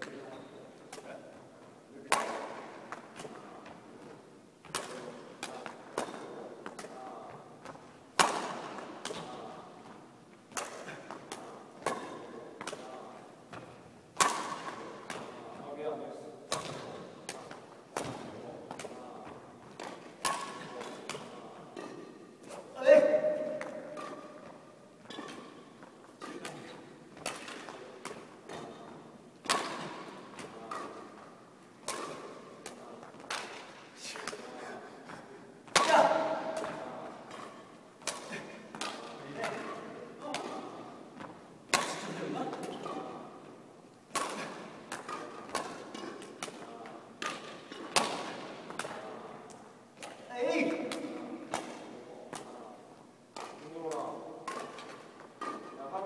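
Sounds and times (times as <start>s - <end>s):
racket hitting shuttlecock: 2.1s - 15.6s, 16.5s - 56.0s.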